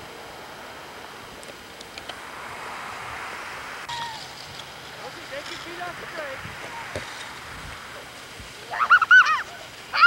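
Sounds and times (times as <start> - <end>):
child squealing: 3.9 - 4.3, 8.7 - 10.0.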